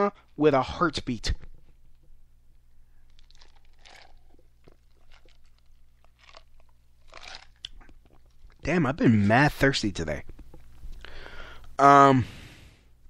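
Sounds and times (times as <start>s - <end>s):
low electrical hum: 0.0s - 13.0s
person drinking and swallowing: 3.0s - 8.6s.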